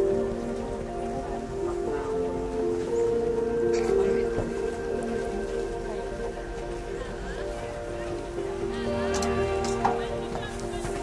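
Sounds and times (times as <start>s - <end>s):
melody of held notes: 0.0s - 11.0s.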